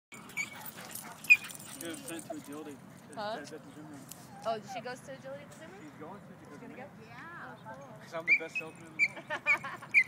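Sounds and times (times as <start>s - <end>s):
dog yipping: 0.2s - 2.7s, 8.2s - 10.0s.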